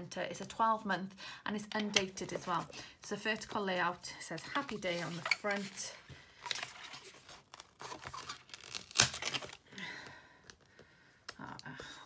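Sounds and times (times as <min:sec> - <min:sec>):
paper and cardboard rustling: 0:04.6 - 0:09.5.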